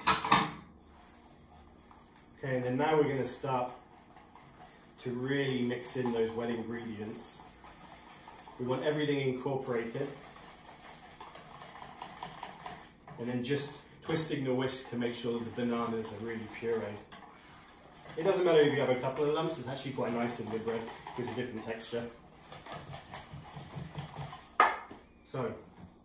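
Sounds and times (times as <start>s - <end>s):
wire whisk beating batter in bowl: 0.0s - 26.0s
whisk knocking against bowl: 2.9s - 25.0s.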